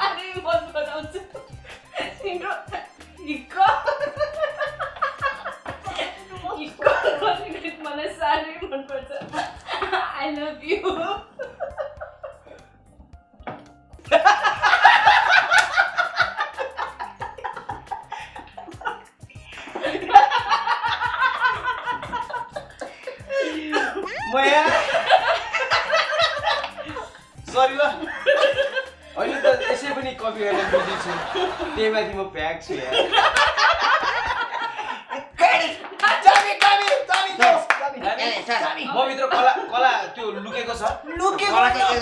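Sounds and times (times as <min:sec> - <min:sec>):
people laughing: 0:01.3 - 0:12.7, 0:14.1 - 0:42.0.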